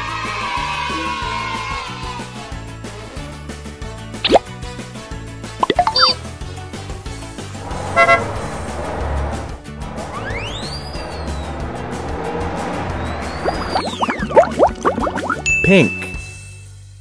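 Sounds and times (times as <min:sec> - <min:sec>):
children's background music: 0:00.0 - 0:03.2, 0:05.4 - 0:06.2, 0:12.7 - 0:16.2
cartoon plops: 0:04.2 - 0:04.4, 0:05.6 - 0:06.2, 0:13.4 - 0:15.5
car horn toot: 0:07.9 - 0:08.4.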